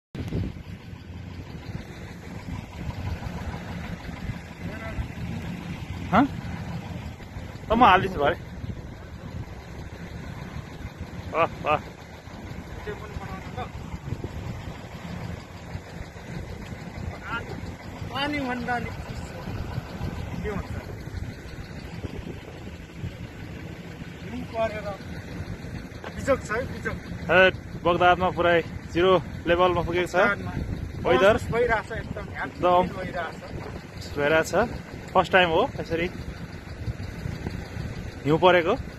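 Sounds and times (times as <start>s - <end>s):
car road and engine rumble: 0.2s - 38.9s
pickup truck driving past: 0.2s - 38.9s.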